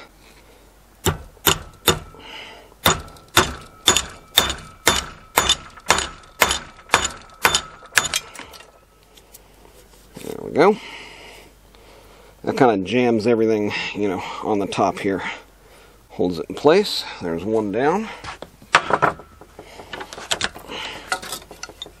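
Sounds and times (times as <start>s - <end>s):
hammer striking metal wedge: 1.0s - 2.2s, 2.8s - 8.6s.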